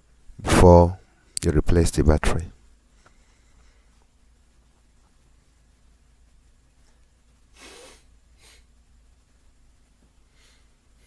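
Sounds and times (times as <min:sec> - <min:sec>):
breaths through the nose: 0:07.5 - 0:08.7.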